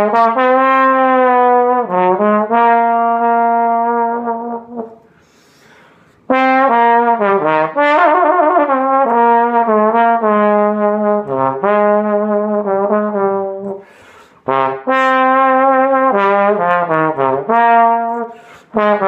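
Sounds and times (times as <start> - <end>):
trombone playing jazz ballad: 0.0 - 5.1, 6.2 - 19.0.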